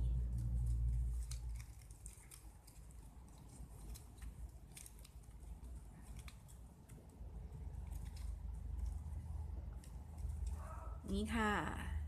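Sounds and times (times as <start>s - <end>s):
ribbon crinkling: 0.0s - 11.3s.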